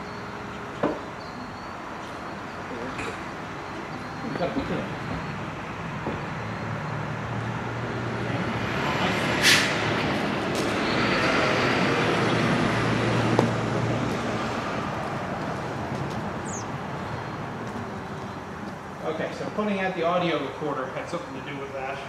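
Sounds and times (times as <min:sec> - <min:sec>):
road vehicle passing: 0:00.0 - 0:22.0.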